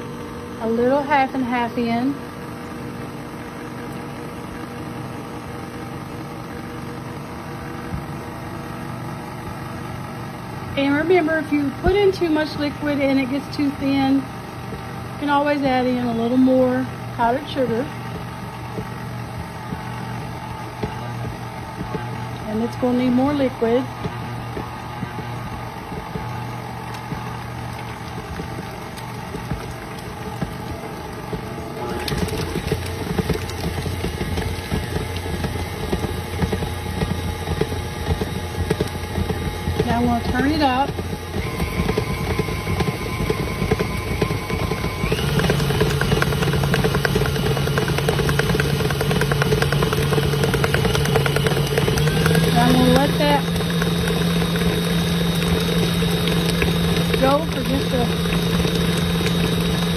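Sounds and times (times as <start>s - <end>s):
stand mixer motor whining: 0.0s - 59.9s.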